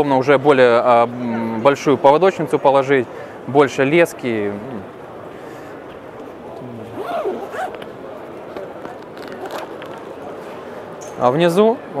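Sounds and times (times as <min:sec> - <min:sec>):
zipper on fabric bag pulled open: 0:06.8 - 0:07.8, 0:08.9 - 0:10.0.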